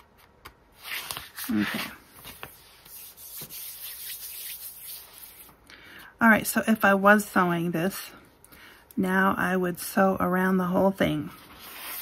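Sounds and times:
paper rustling under hands: 0:00.0 - 0:05.6.

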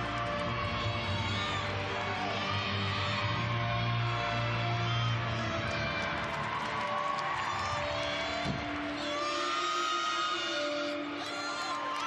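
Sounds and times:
crowd murmuring and cheering: 0:00.0 - 0:12.0
music playing through hall: 0:00.0 - 0:12.0.

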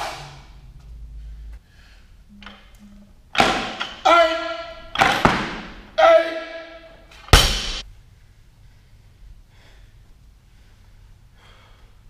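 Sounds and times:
barbell thudding on gym floor: 0:03.4 - 0:06.0, 0:07.3 - 0:07.8.

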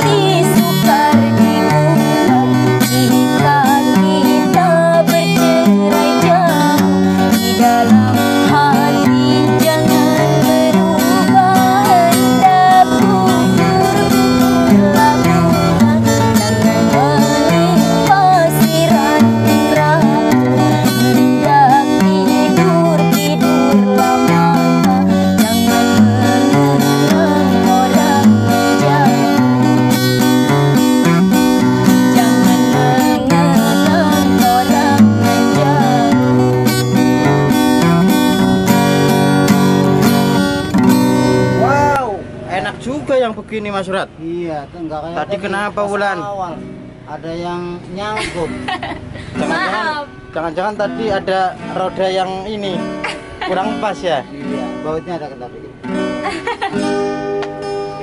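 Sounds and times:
woman singing: 0:00.0 - 0:40.7
acoustic guitar strummed and picked: 0:00.0 - 0:58.0.

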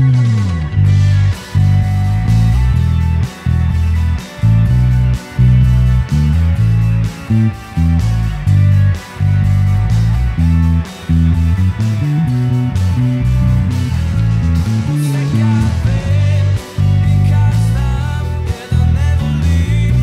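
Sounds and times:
fingerstyle electric bass notes: 0:00.0 - 0:20.0
rock band instrumental: 0:00.0 - 0:20.0.

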